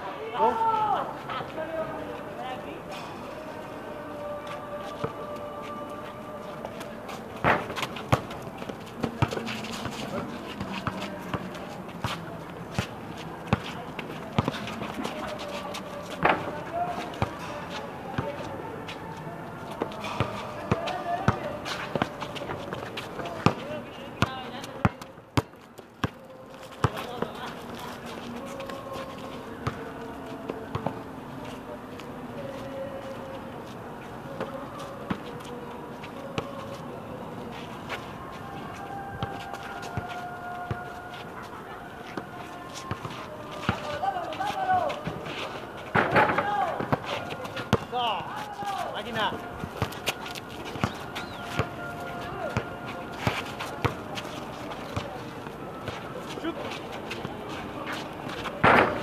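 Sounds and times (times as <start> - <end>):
players calling out: 2.7 - 24.8.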